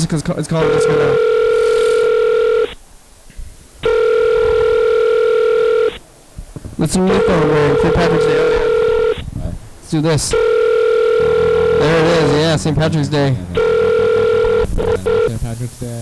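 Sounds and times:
man talking: 0:00.0 - 0:01.8, 0:06.8 - 0:10.4, 0:11.2 - 0:16.0
telephone ringing tone: 0:00.6 - 0:02.8, 0:03.8 - 0:06.0, 0:06.9 - 0:09.2, 0:10.2 - 0:15.4.

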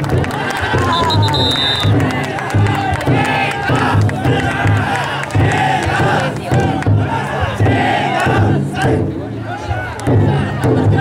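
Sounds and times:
big drum beating: 0:00.0 - 0:11.0
crowd shouting a chant: 0:00.0 - 0:11.0.

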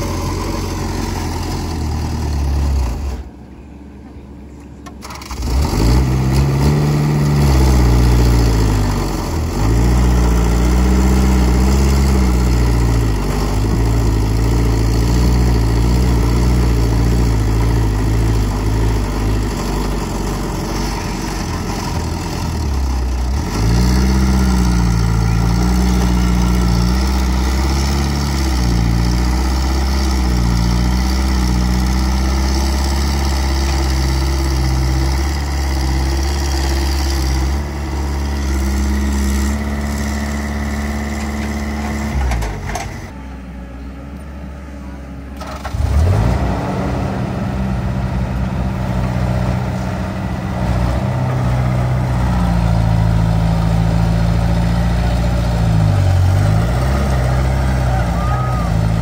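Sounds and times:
excavator diesel engine under load: 0:00.0 - 0:59.0.

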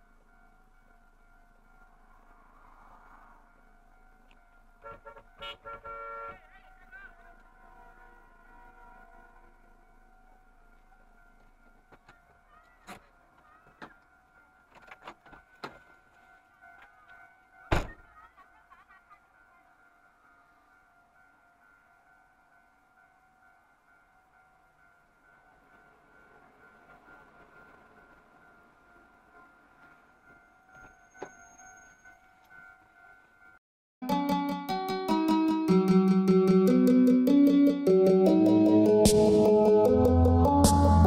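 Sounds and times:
level crossing warning bell: 0:00.0 - 0:05.4, 0:06.4 - 0:13.3, 0:19.0 - 0:41.0
passenger train passing: 0:00.0 - 0:05.4, 0:06.4 - 0:12.6, 0:18.3 - 0:33.6.

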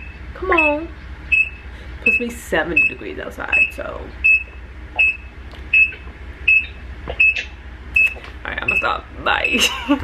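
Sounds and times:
reversing alarm beeping: 0:00.0 - 0:09.7.

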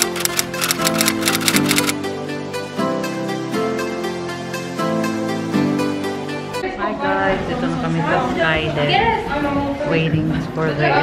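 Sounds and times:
typewriter key clicks: 0:00.0 - 0:01.9.

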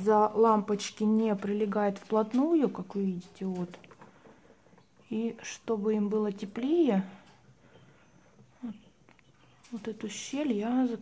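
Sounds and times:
quail chicks peeping: 0:07.3 - 0:10.9.

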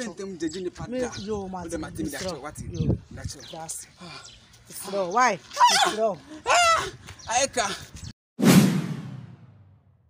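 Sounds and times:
whoosh with low boom: 0:08.4 - 0:10.0.

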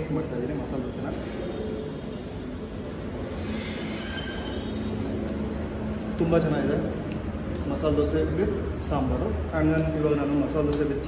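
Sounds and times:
faint high-pitched squealing: 0:03.0 - 0:05.2.

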